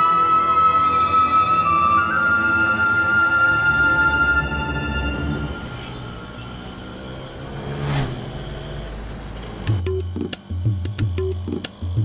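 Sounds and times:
road traffic noise: 0.0s - 10.6s
vehicle rushing past: 4.5s - 9.8s.

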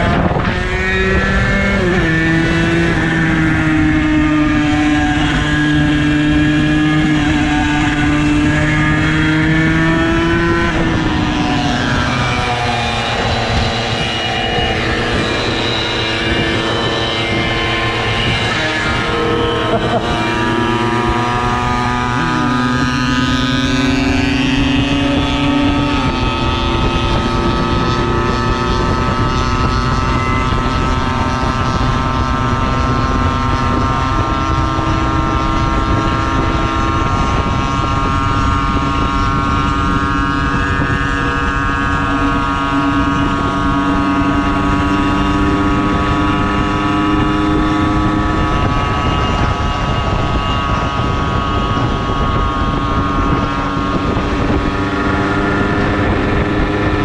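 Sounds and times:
moped engine running: 0.0s - 57.0s
wind rushing over microphone: 0.0s - 57.0s.

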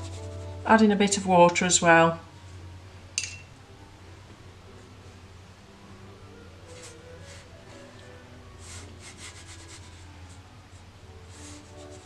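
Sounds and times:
paintbrush swishing on paper: 0.0s - 0.6s, 6.6s - 7.9s, 8.6s - 12.0s.

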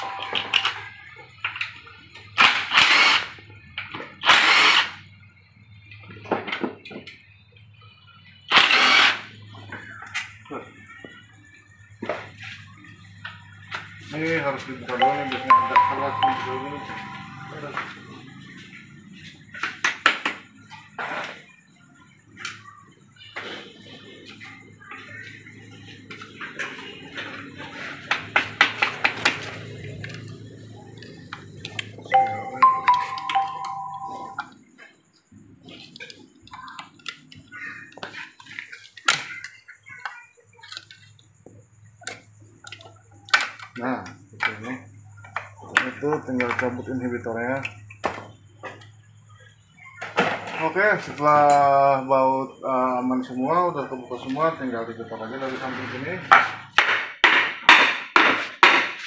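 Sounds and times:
two-note electronic chime: 0.0s - 0.9s, 15.0s - 18.0s, 32.1s - 34.4s.

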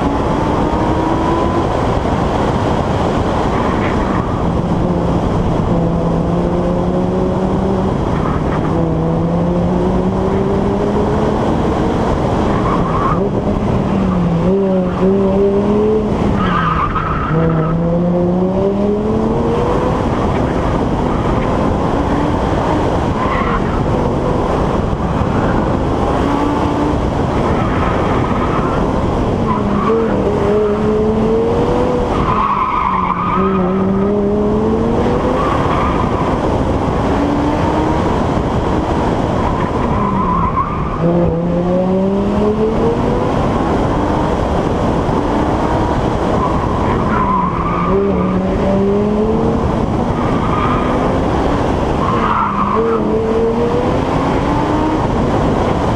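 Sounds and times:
car engine revving: 0.0s - 55.9s
wind rushing: 0.0s - 55.9s.

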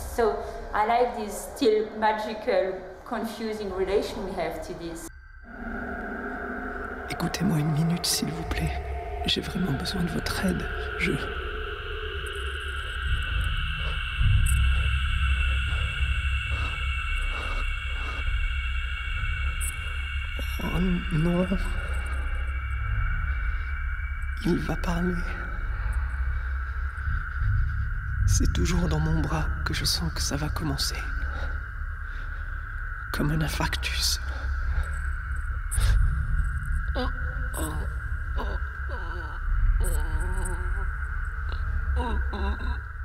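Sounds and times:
low hum: 0.0s - 43.0s
steady high-pitched tones: 0.0s - 43.0s
low rumbling drone: 3.6s - 43.0s.

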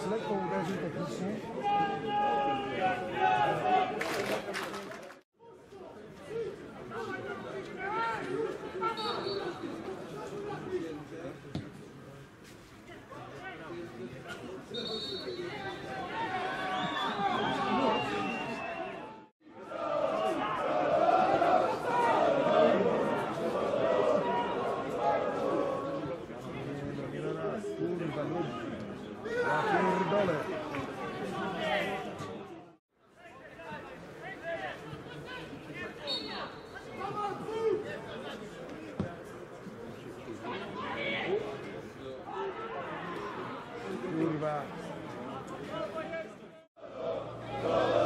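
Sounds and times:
indistinct chatter of voices: 0.0s - 48.0s.

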